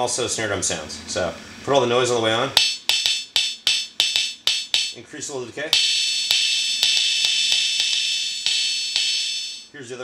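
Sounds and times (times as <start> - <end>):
stick tapping drum pad: 2.6 - 5.0, 5.7 - 9.7.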